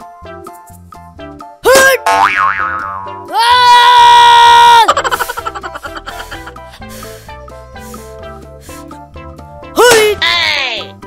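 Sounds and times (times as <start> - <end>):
background music: 0.0 - 11.0
wobbling boing: 2.0 - 3.3.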